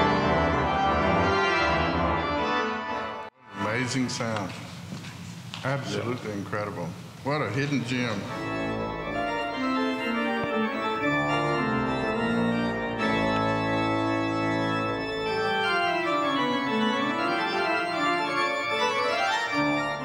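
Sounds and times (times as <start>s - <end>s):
pipe organ playing chords: 0.0s - 4.2s, 7.9s - 20.0s.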